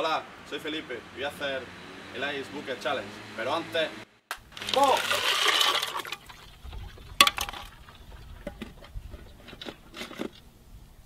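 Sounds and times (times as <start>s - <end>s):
water splashing in a plastic tub: 4.4s - 8.8s.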